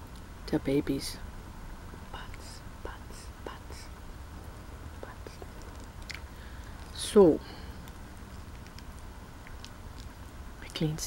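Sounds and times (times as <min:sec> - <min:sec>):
breathy whispering: 0:02.1 - 0:04.0, 0:04.9 - 0:07.9
wet mouth clicks: 0:05.3 - 0:06.3.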